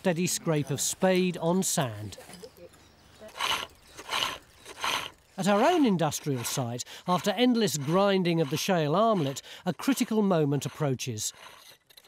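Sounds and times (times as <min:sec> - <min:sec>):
digging tools scraping sandy soil: 0:03.2 - 0:12.0.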